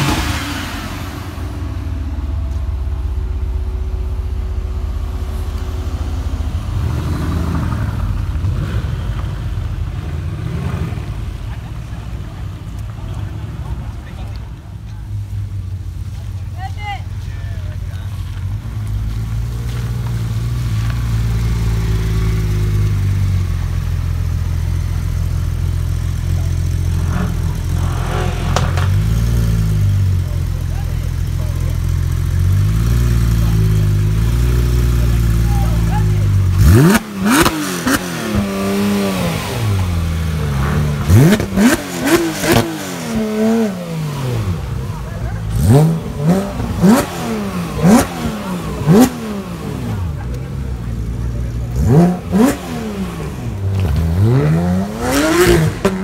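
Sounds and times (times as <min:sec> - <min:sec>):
car engine idling: 0:00.0 - 0:56.0
car engine revving in blips: 0:18.2 - 0:56.0.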